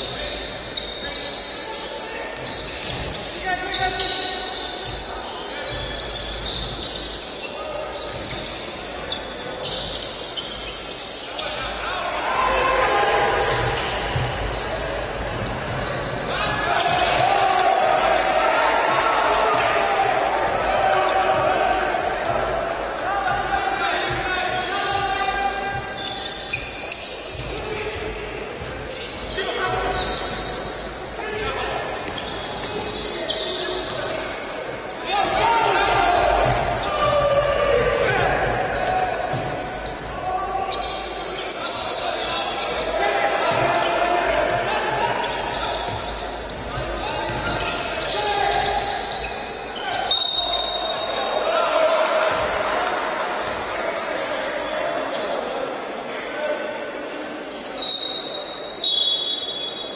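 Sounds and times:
voices calling out echoing: 0.0s - 59.9s.

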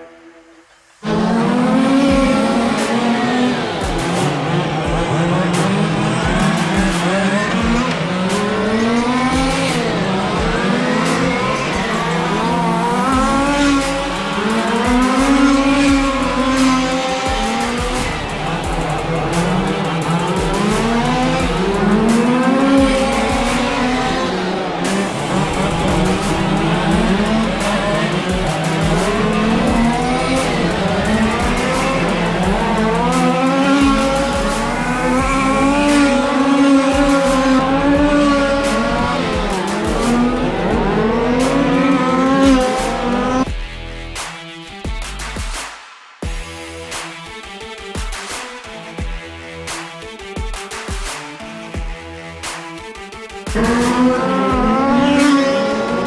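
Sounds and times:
radio-controlled car motors racing: 1.0s - 43.4s, 53.5s - 56.0s.

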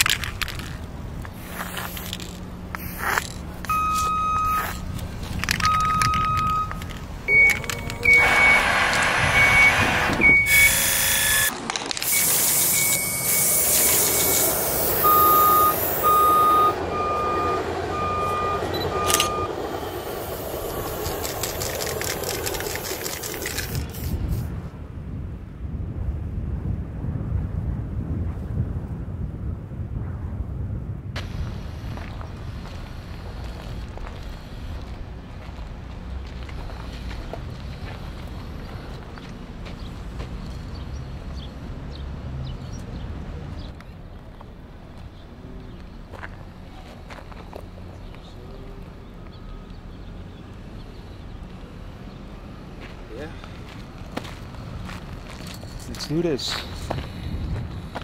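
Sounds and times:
low engine rumble: 0.0s - 58.0s
hissing noise bursts: 1.2s - 5.5s, 7.0s - 17.0s, 19.6s - 24.6s, 31.2s - 35.2s
reversing alarm beeps: 3.7s - 4.8s, 5.6s - 11.5s, 12.1s - 20.3s, 31.5s - 35.0s, 36.4s - 39.3s.

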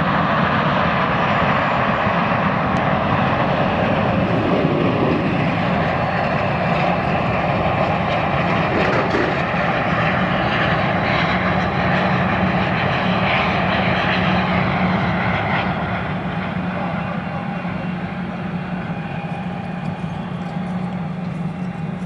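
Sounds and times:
jet engines roaring: 0.0s - 22.0s
low hum: 2.8s - 22.0s.

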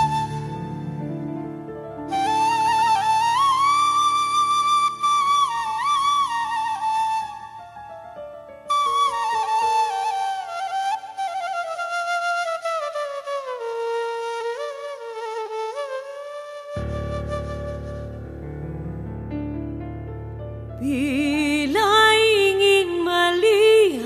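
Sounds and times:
flute melody: 0.0s - 19.4s.

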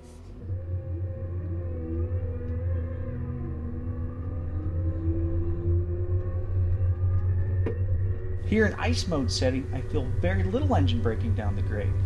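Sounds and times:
wheel loader engine droning: 0.0s - 12.0s.

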